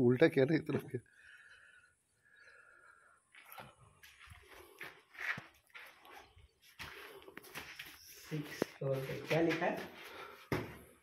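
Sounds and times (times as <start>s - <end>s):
footsteps on gravel and concrete: 3.3s - 10.9s.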